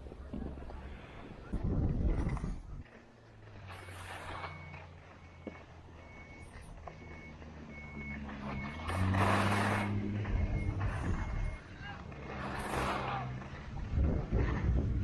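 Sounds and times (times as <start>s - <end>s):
low engine hum: 0.0s - 15.0s
skis scraping on snow: 2.0s - 15.0s
reversing beeper: 2.7s - 13.4s.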